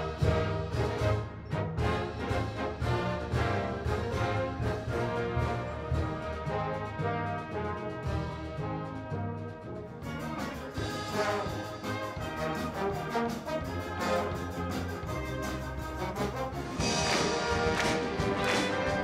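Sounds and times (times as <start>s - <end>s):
wind band playing: 0.0s - 19.0s.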